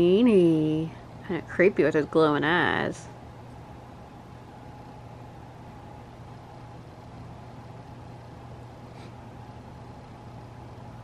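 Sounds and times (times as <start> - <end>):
air conditioning hum: 0.0 - 11.0.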